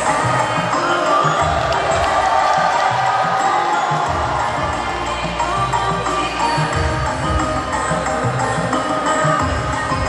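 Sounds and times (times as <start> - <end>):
musical backing with low beat: 0.0 - 10.0
vocal group singing: 0.0 - 10.0
audience cheering: 1.2 - 5.1.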